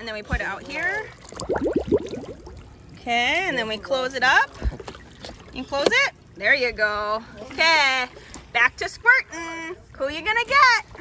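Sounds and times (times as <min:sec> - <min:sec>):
air bubbling out underwater: 0:01.3 - 0:02.8.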